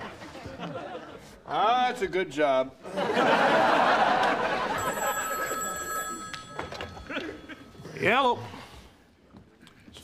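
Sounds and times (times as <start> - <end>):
audience laughter: 2.8 - 5.2
telephone ringing: 4.4 - 7.8.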